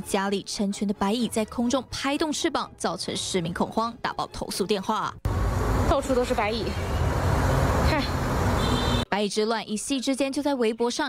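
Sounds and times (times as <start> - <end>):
low rumble of traffic: 5.3 - 9.0.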